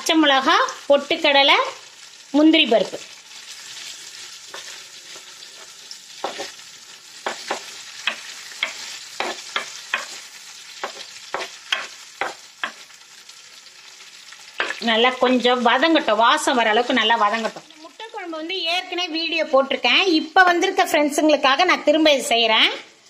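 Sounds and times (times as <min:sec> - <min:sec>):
vegetables sizzling in hot oil: 0:00.0 - 0:23.0
wooden spatula scraping pot: 0:04.4 - 0:06.6, 0:07.2 - 0:12.8.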